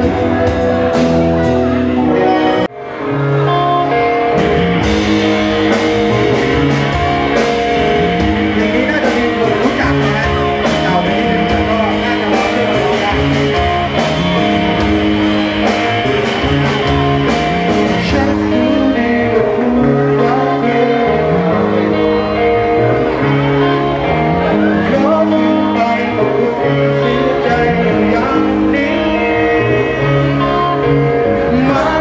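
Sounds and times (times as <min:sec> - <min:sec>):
live rock band music: 0:00.0 - 0:32.0.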